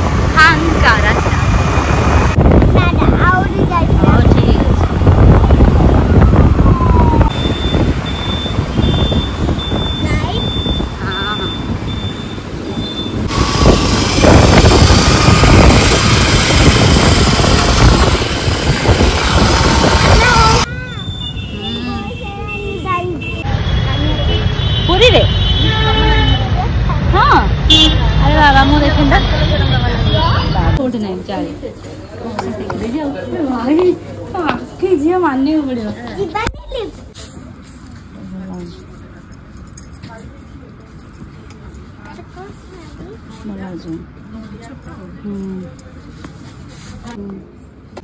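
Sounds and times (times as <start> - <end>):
wind buffeting microphone: 0.0 - 12.0, 13.1 - 20.9
road and traffic noise: 0.0 - 48.0
street noise with voices: 0.0 - 48.0
short repeated beep: 7.3 - 13.3.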